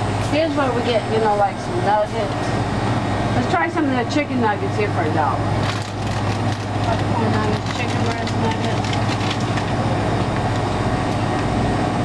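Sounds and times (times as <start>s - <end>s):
freezer case humming: 0.0s - 12.0s
store background noise: 0.0s - 12.0s
plastic bag rustling: 5.6s - 9.8s.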